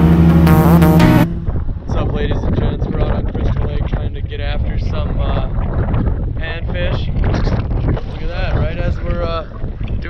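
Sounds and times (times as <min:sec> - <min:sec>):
wind buffeting microphone: 0:01.2 - 0:10.0.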